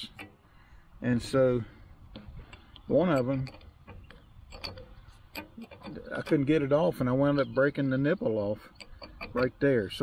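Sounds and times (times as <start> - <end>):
wrench metallic clicks: 2.1 - 7.6, 8.6 - 10.0.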